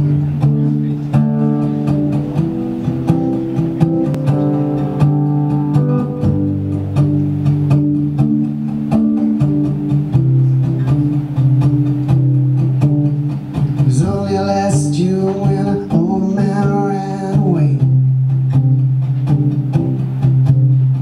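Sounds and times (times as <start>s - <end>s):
acoustic guitar: 0.0s - 21.0s
man singing: 13.8s - 17.9s.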